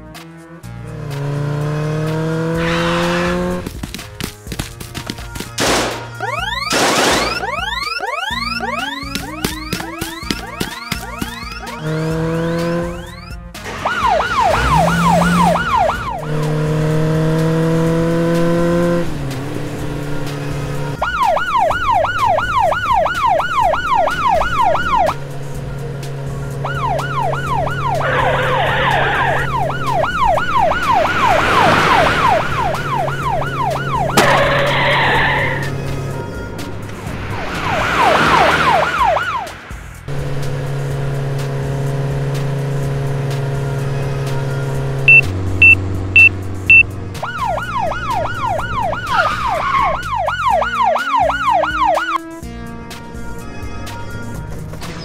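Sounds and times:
engine hum: 0.0s - 55.0s
police siren wailing: 5.6s - 19.2s, 20.2s - 40.0s, 45.0s - 52.3s
quick beeps: 7.3s - 12.0s, 45.1s - 46.9s
tyre skids: 27.2s - 40.0s.

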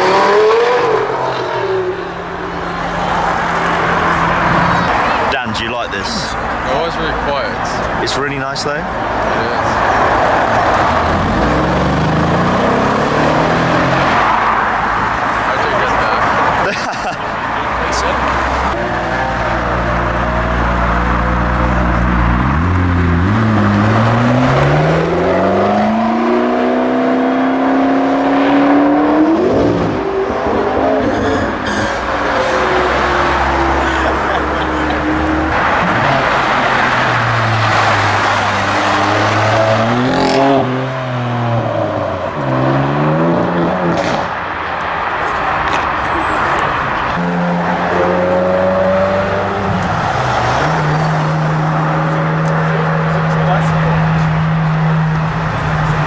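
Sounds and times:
sports car engines accelerating: 0.0s - 5.4s, 8.8s - 56.0s
tyre and road noise: 0.0s - 56.0s.

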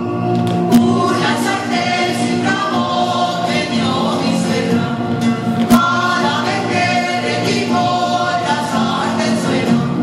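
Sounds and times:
folk dance music: 0.0s - 10.0s
group of voices singing: 0.6s - 10.0s.

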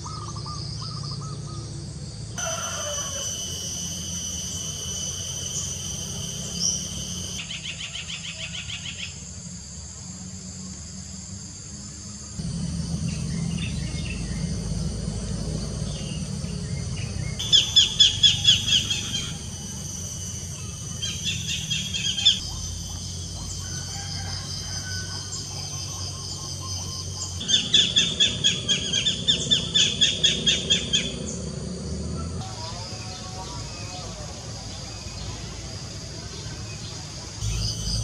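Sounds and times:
high insect drone: 0.0s - 38.0s
bird chirping rapidly: 3.2s - 7.7s, 16.0s - 23.6s
low rumble: 12.4s - 20.5s, 37.4s - 38.0s.

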